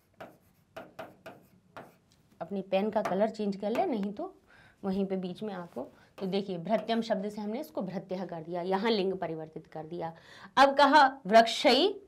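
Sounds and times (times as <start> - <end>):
pen scratching on whiteboard: 0.0 - 2.1.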